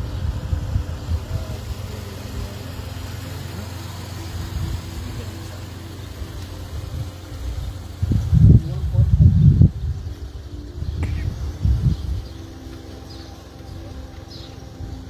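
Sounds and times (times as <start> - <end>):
faint distant voices: 0.0 - 15.0
steady low rumble: 0.0 - 15.0.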